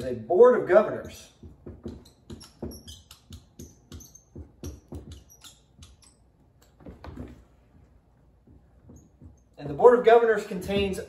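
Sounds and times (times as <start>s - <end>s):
marker squeaking on whiteboard: 0.0s - 9.8s.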